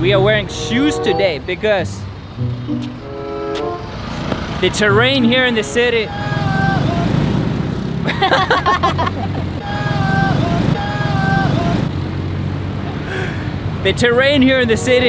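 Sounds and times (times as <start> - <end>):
road traffic: 0.0 - 15.0
short held tones: 0.5 - 3.9
motorcycle passing: 1.8 - 9.2
person laughing: 8.0 - 9.5.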